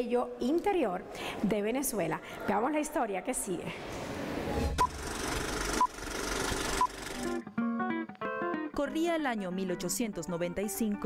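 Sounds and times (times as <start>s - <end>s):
film projector whirring: 4.8s - 7.4s.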